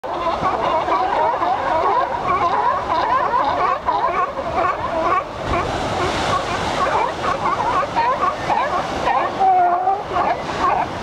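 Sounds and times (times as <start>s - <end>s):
sea lions calling: 0.1s - 11.0s
breaking surf: 5.0s - 11.0s.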